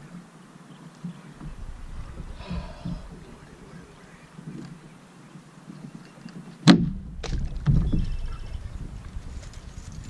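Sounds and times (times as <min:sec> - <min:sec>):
kayak knocks: 0:01.4 - 0:03.6
low rumble: 0:01.4 - 0:04.9.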